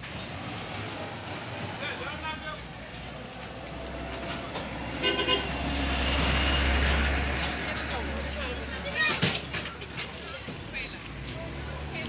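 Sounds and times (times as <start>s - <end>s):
vehicle passing by: 0.0s - 9.0s.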